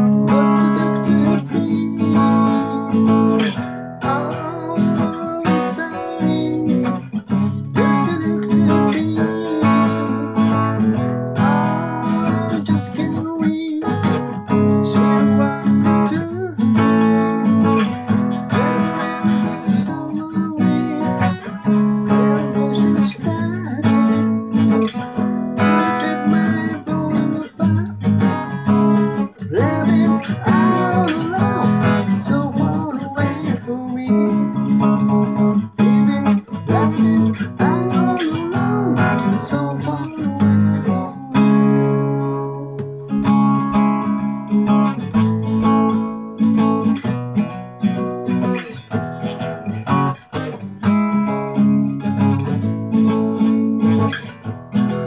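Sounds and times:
acoustic guitar strummed chords: 0.0s - 55.0s.

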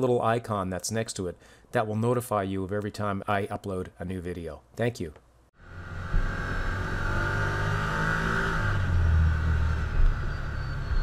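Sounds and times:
vehicle engine droning: 5.6s - 11.0s.

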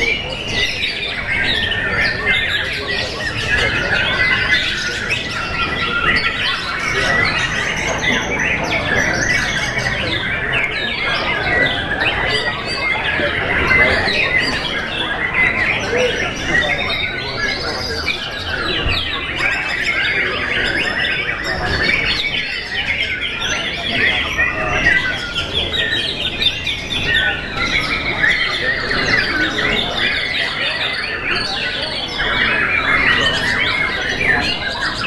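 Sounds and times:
birds singing whistles and warbles: 0.0s - 35.0s.

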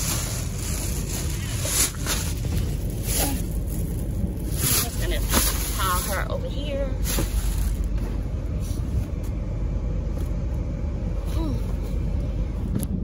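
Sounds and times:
bedding and bags rustling: 0.0s - 9.2s
steady low rumble: 0.0s - 13.0s.

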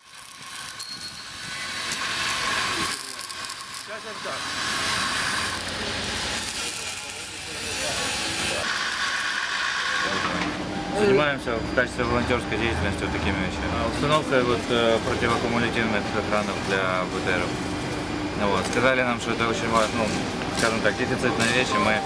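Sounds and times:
arc welding crackling hiss: 0.0s - 10.4s, 14.0s - 22.0s.

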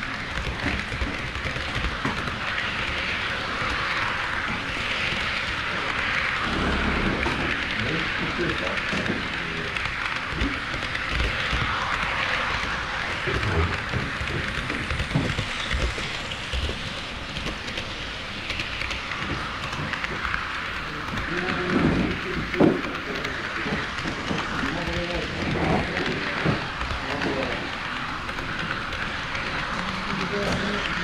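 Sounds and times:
model train wheels hissing on rails: 0.0s - 31.0s.

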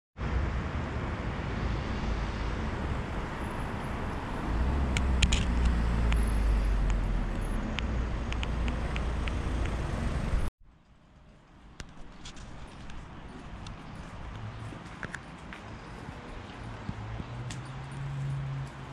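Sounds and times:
vehicle passing with deep rumble: 0.2s - 10.5s, 13.1s - 18.9s
road traffic noise: 0.2s - 18.9s.

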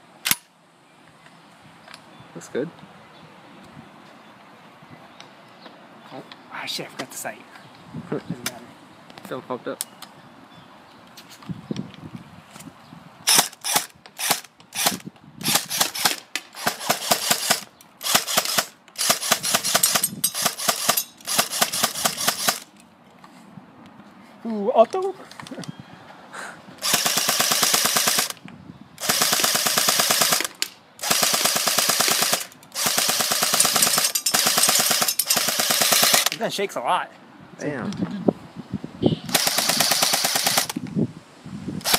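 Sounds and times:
airsoft gun firing bursts: 13.3s - 22.7s, 26.8s - 28.4s, 29.0s - 36.4s, 39.3s - 40.8s.

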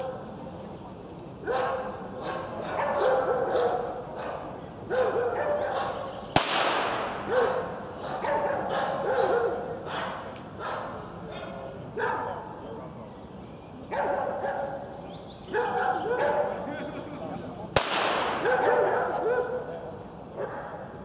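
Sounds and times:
dog barking: 1.4s - 6.1s, 7.2s - 12.5s, 13.9s - 14.9s, 15.5s - 16.7s, 18.4s - 21.0s
sharp crack: 6.3s - 7.3s, 17.7s - 18.6s.

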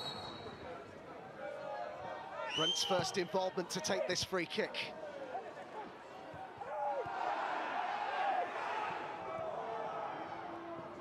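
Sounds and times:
football crowd noise: 0.0s - 11.0s.

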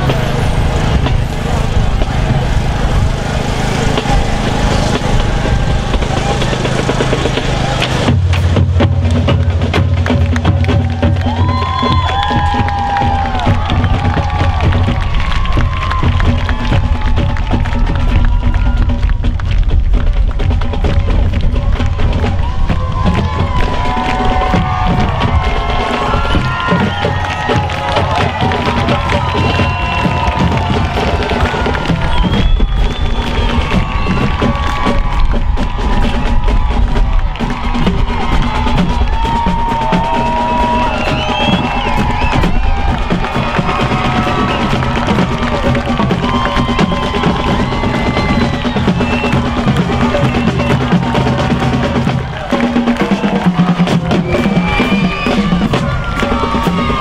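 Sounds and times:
crowd cheering and shouting: 0.0s - 57.0s
marching band playing with drums: 0.0s - 57.0s.

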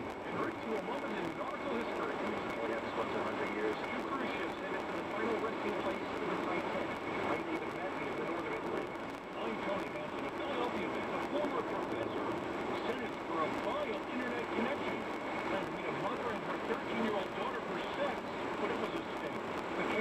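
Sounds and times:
radio news broadcast talk: 0.0s - 20.0s.

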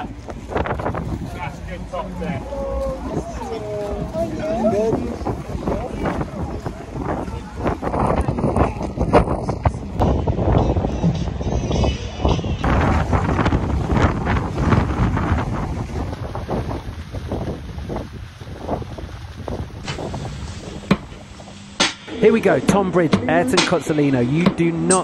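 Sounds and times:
strong wind buffeting microphone: 0.0s - 25.0s.

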